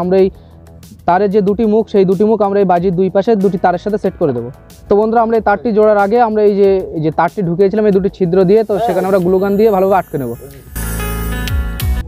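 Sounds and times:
person speaking loudly: 0:04.9 - 0:10.6.

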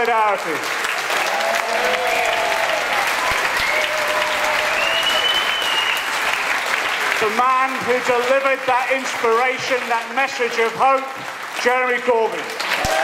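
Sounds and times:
audience applauding: 0:00.0 - 0:13.0.

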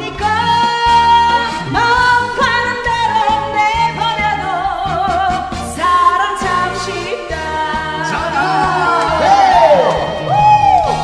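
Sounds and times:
woman singing with vibrato: 0:00.0 - 0:09.3
backing music: 0:00.0 - 0:11.0.

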